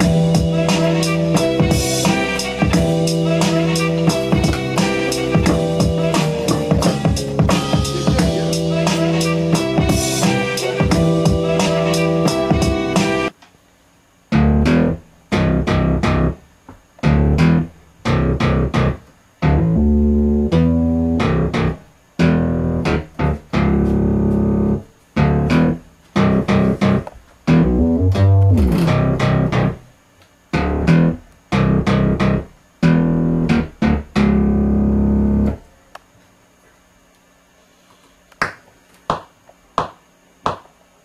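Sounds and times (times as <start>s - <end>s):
synthesised bass and plucked guitar riff: 0.0s - 13.3s, 14.3s - 16.4s, 17.0s - 29.9s, 30.5s - 35.6s.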